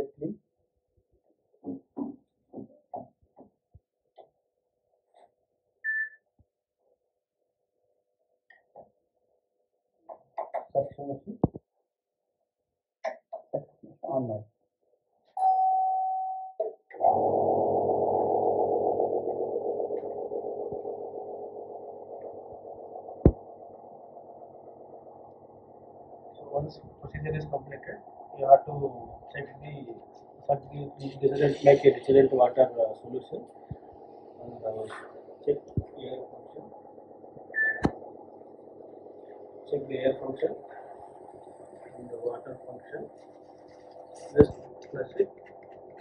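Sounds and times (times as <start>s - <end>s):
short electronic beep: 37.5s - 37.9s.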